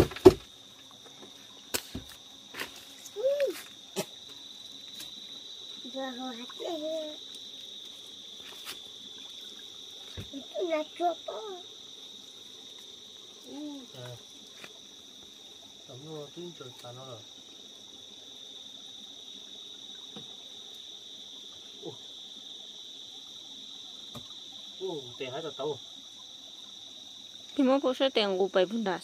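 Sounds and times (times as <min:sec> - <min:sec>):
high-pitched insect chorus: 0:00.0 - 0:29.0.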